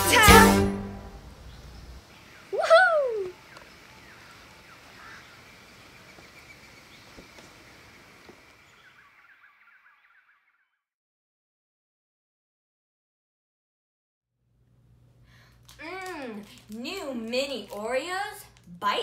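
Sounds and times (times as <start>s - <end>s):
faint bird chirps: 1.4s - 10.9s
child whooping: 2.5s - 3.4s.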